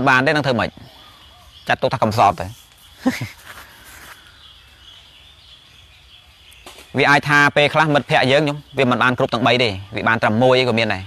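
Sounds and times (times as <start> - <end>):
faint background noise: 0.0 - 11.0
man speaking: 1.7 - 3.4, 7.0 - 11.0.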